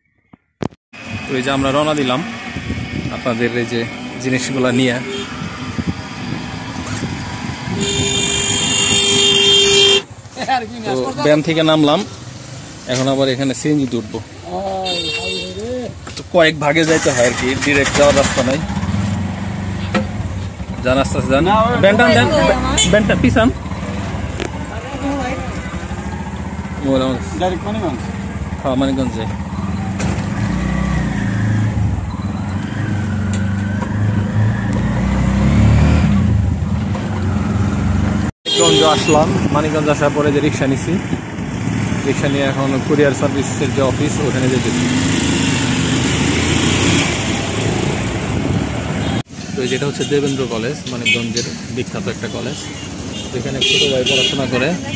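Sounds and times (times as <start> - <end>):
road traffic noise: 0.1 - 54.9.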